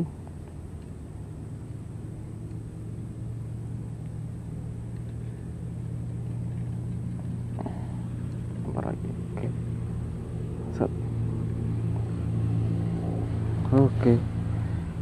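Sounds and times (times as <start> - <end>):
distant motor drone: 0.0 - 15.0.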